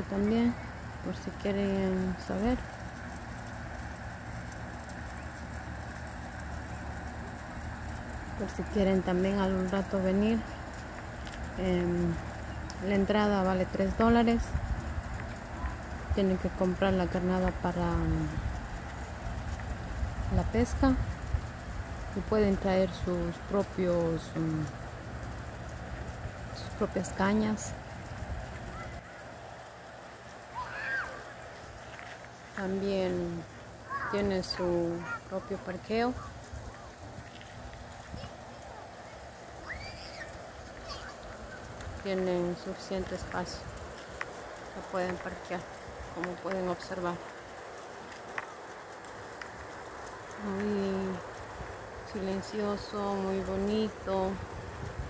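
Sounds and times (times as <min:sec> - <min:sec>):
even hiss: 0:00.0 - 0:55.0.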